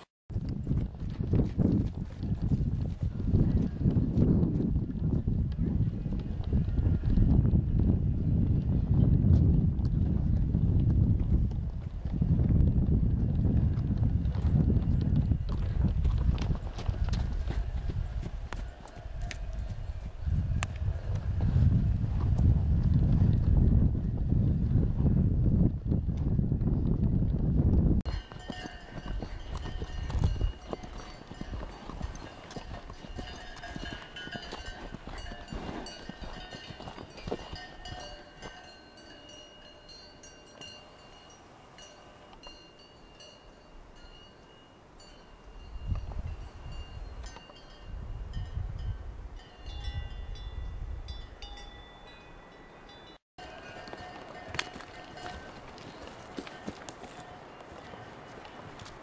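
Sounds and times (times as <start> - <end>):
horse hooves walking: 0.0 - 50.5, 52.9 - 59.0
wind buffeting microphone: 0.3 - 41.1, 45.4 - 52.2
bell-like ringing tones: 28.1 - 58.9.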